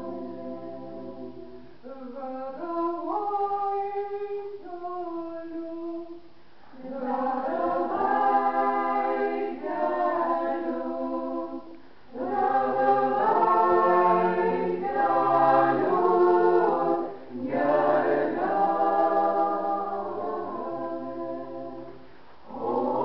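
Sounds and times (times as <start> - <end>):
choir singing in parts: 0.0 - 6.1, 6.7 - 23.0.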